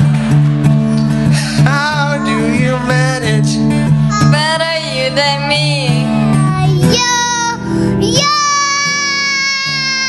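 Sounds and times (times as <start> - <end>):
acoustic guitar chords: 0.0 - 10.0
child singing high note: 4.1 - 4.4, 6.4 - 10.0.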